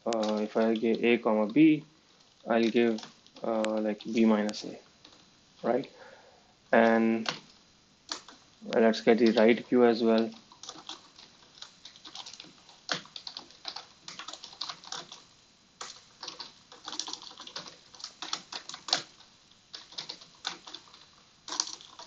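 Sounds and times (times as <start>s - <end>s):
computer keyboard typing: 0.0s - 1.6s, 2.4s - 5.2s, 6.8s - 7.5s, 8.1s - 22.0s.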